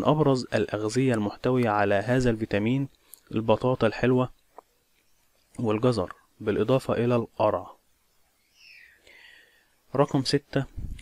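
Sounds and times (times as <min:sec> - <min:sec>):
soft intake of breath: 0:08.5 - 0:09.8.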